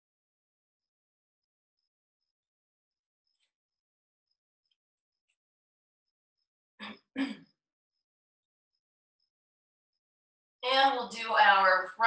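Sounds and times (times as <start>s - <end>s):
woman clearing her throat: 6.8s - 7.6s.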